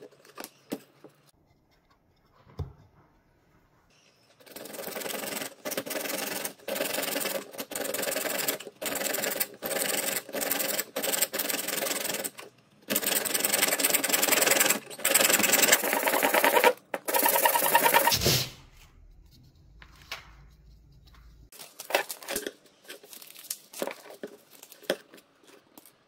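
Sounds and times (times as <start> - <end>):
hacksaw cutting plastic pipe: 14.2 - 18.3.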